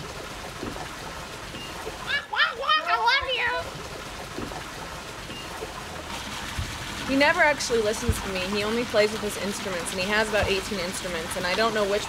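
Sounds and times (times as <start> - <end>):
fountain pouring into pool: 0.0 - 12.0.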